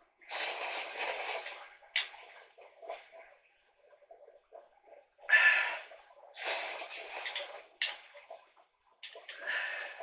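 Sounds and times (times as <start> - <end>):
noodles slurped from a bowl: 0.3 - 1.7.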